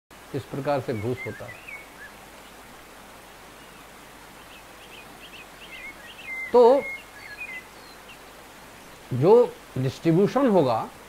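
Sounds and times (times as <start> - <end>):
steady hiss: 0.1 - 11.0
faint bird chirps: 0.4 - 2.6, 3.5 - 9.0.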